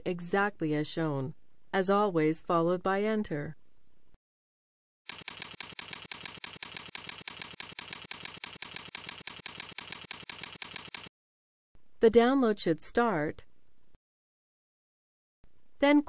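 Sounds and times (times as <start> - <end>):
computer keyboard typing: 5.1 - 11.1.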